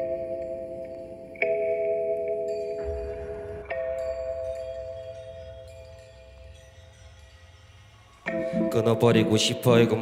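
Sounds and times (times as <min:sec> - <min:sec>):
held synth chord: 0:00.0 - 0:10.0.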